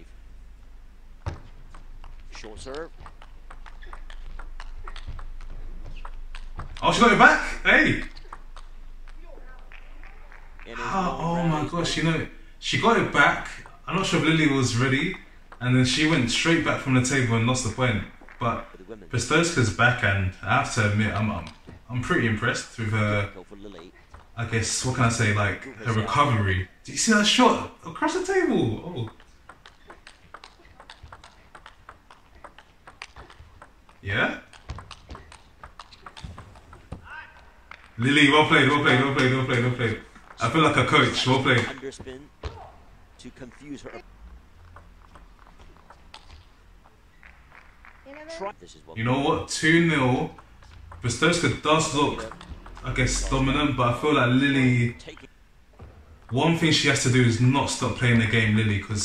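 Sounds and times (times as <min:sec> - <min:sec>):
table tennis ball clicks: 0:01.2 - 0:06.8, 0:08.0 - 0:10.7, 0:29.0 - 0:38.0, 0:44.6 - 0:48.2, 0:52.1 - 0:52.9.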